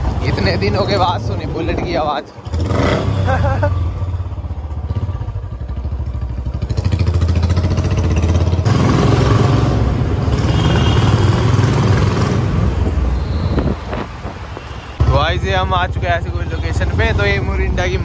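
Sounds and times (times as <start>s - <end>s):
motorcycle engine running: 0.0s - 9.3s.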